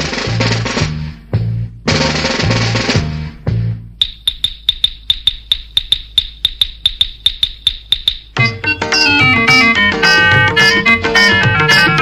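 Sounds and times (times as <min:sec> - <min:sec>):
rapid metallic ticks with ringing ping: 0:04.0 - 0:08.4.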